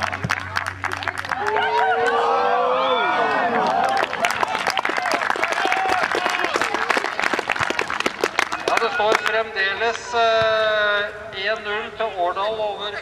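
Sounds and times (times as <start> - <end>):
crowd clapping: 0.0 - 2.5, 3.2 - 9.5.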